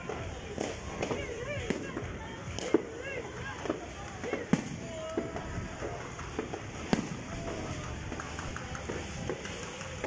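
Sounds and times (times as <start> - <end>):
faint firework pops: 0.0 - 10.0
firework bang: 3.6 - 10.0.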